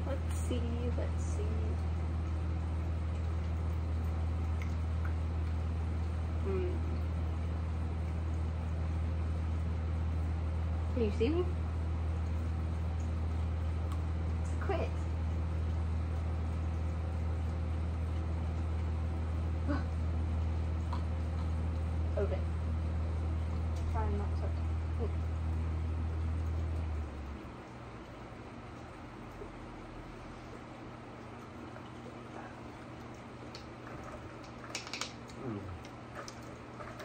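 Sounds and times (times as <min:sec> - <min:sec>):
steady low hum: 0:00.0 - 0:37.0
person murmuring mm: 0:35.4 - 0:35.8.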